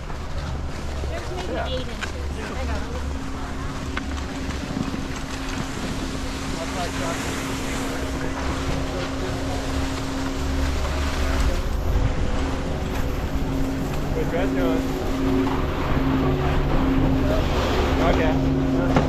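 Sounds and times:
skis sliding over snow: 0.0s - 14.9s
steady low hum: 0.0s - 19.0s
wind buffeting microphone: 2.2s - 18.8s.

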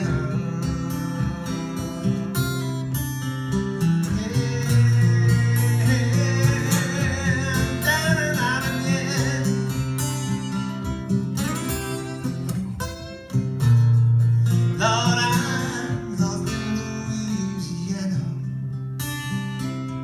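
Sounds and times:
acoustic guitar playing: 0.0s - 20.0s.

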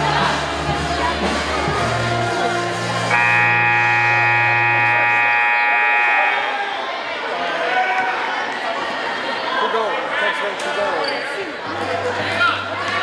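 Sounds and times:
crowd chatter in a gym: 0.0s - 13.0s
scoreboard buzzer: 3.1s - 6.6s.

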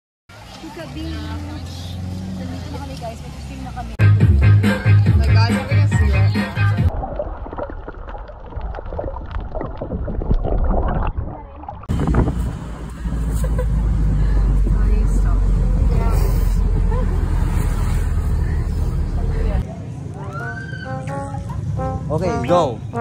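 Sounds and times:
underwater bubbling and splashing: 6.9s - 12.2s
wind buffeting microphone: 9.6s - 19.6s.

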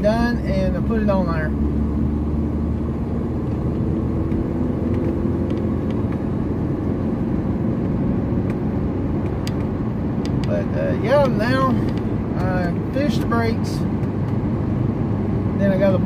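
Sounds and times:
car road and engine rumble: 0.0s - 16.0s.

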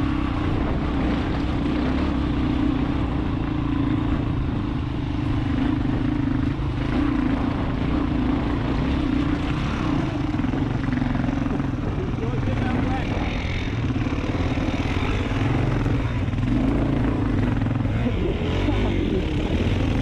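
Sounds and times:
motorcycle engine under load: 0.0s - 20.0s.

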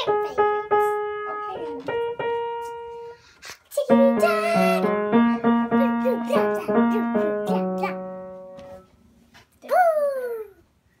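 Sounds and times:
piano note: 3.9s - 9.0s.

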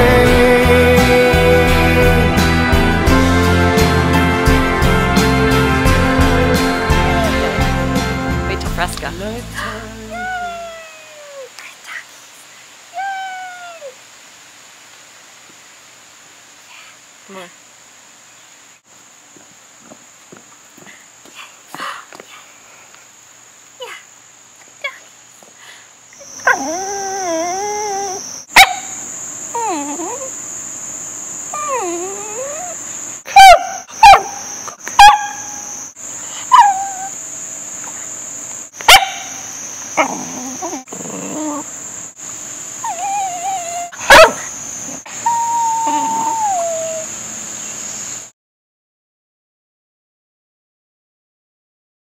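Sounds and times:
high insect-like buzz: 0.0s - 12.0s, 22.3s - 48.3s
dogs whining and howling: 10.1s - 11.5s, 13.0s - 14.0s, 26.2s - 30.4s, 31.5s - 37.2s, 38.9s - 41.9s, 42.8s - 47.2s
dog barks: 28.5s - 29.0s, 33.3s - 35.6s, 38.8s - 39.4s, 44.0s - 44.5s.

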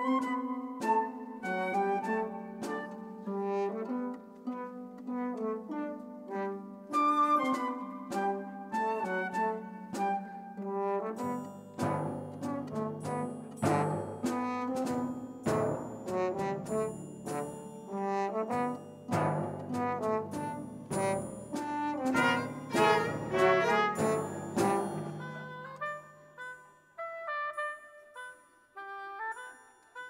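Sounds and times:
orchestra playing dance tune: 10.6s - 26.6s
regular beats: 18.3s - 25.9s.

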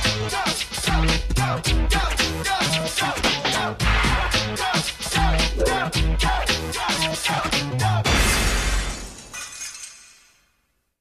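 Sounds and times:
funk theme music: 0.0s - 8.0s.

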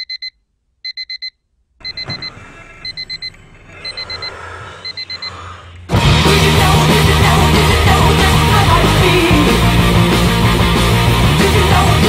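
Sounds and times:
alarm clock beeping: 0.0s - 5.4s
rock music with guitar: 5.9s - 12.0s.

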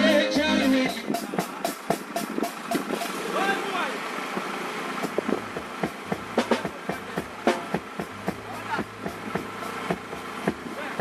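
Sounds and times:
vehicles on rough road: 0.0s - 11.0s
low engine hum: 1.9s - 11.0s
faint voices: 6.2s - 11.0s.

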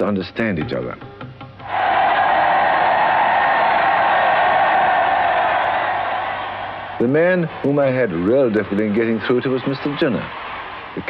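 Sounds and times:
large crowd cheering: 1.6s - 11.0s.

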